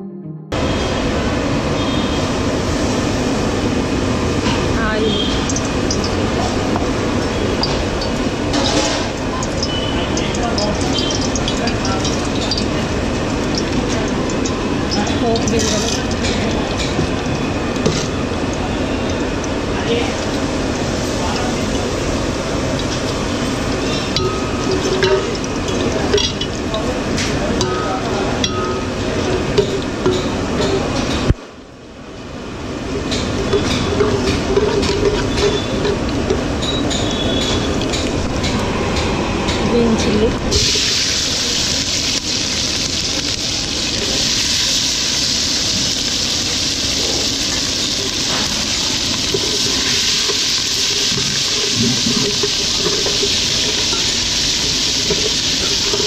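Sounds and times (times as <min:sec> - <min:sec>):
hot oil sizzling in a pot: 0:01.7 - 0:31.3, 0:32.4 - 0:38.4, 0:40.0 - 0:56.0
metal ladle clinking in a pot: 0:23.8 - 0:26.8
gas stove rushing: 0:32.6 - 0:56.0.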